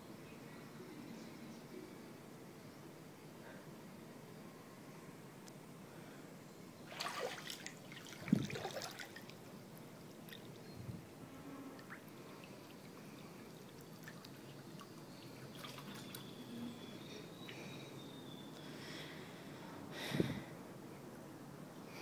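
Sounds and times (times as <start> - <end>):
pool water lapping: 6.8 - 10.6, 11.7 - 17.8
water sloshing: 6.9 - 9.4, 11.8 - 16.4.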